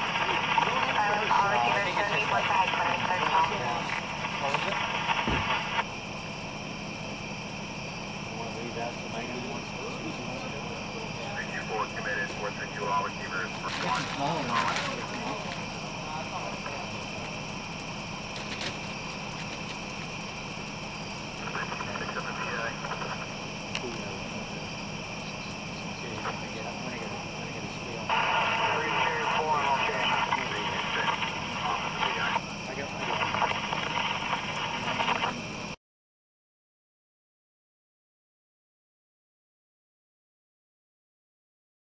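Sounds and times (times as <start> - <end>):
radio static hiss: 0.0 - 35.8
radio voice bursts: 21.4 - 23.4.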